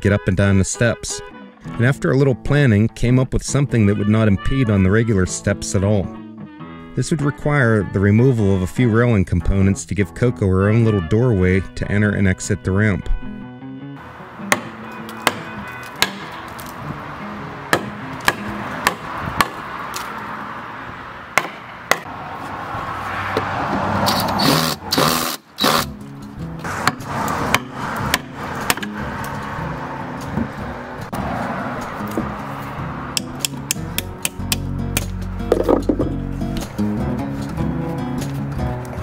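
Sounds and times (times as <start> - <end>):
background music: 0.0 - 20.6, 25.6 - 39.0
sharp knocks on wood: 14.5 - 16.3, 21.4 - 22.1
wood scraping and knocking: 30.2 - 30.7, 35.4 - 36.8.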